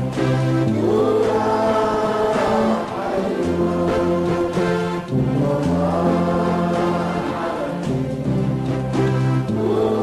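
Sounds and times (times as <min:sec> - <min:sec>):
choir singing held notes: 0:00.0 - 0:10.0.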